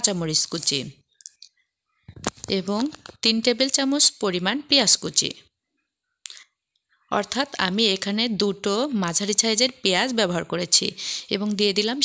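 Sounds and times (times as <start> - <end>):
woman speaking: 0.0 - 1.1, 2.4 - 5.5, 7.1 - 12.0.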